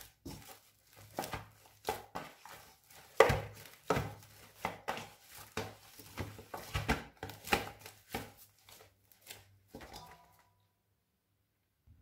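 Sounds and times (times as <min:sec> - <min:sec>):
dough slapping against metal bowl: 0:00.0 - 0:10.4.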